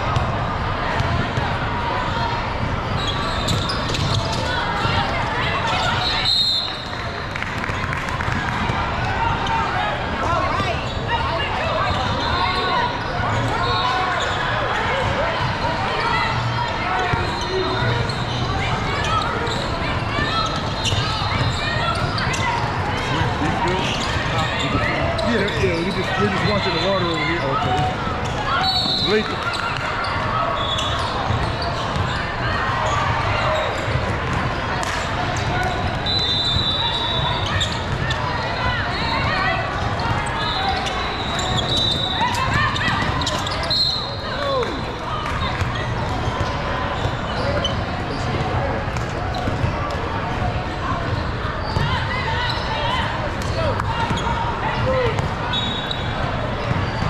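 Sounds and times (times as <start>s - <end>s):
crowd chatter in large hall: 0.0s - 57.0s.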